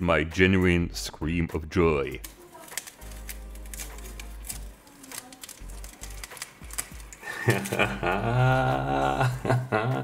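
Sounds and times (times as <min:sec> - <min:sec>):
masking tape crackling: 0:01.3 - 0:09.2
person screaming with joy: 0:08.0 - 0:09.4.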